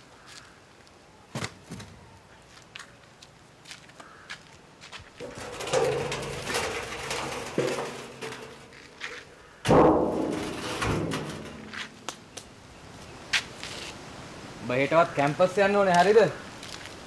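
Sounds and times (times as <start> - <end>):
loud metallic clang: 5.2 - 9.0, 9.7 - 12.4
metal drum rolling: 5.2 - 12.3.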